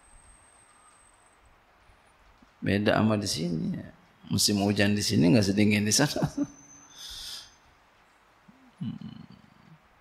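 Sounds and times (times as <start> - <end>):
man chuckling: 6.0 - 6.6, 8.6 - 9.8.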